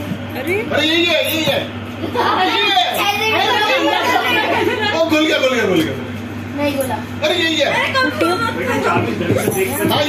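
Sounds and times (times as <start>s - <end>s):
steady low hum: 0.0s - 10.0s
overlapping chatter: 7.6s - 10.0s.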